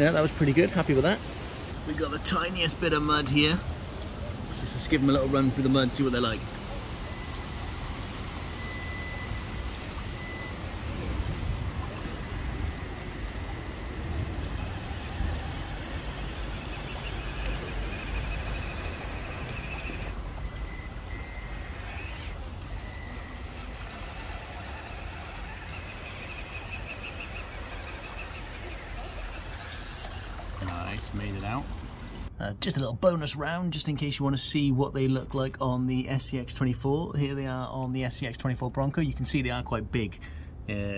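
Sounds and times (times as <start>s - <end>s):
faint high motor whine: 0.0s - 40.9s
tyres churning wet mud: 8.5s - 32.3s.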